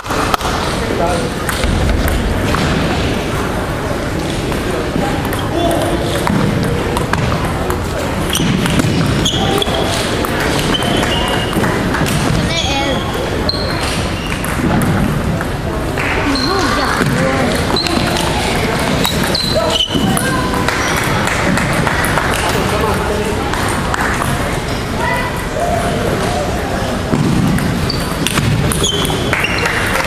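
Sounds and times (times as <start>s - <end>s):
chatter of voices: 0.0s - 30.0s.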